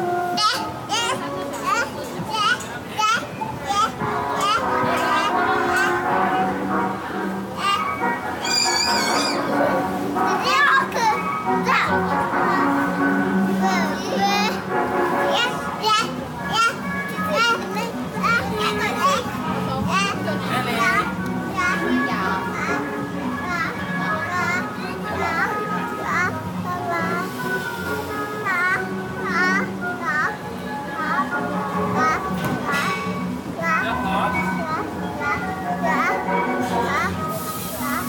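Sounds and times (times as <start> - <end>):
carousel music: 0.0 - 38.0
children chattering: 0.0 - 38.0
children squealing: 8.4 - 9.6.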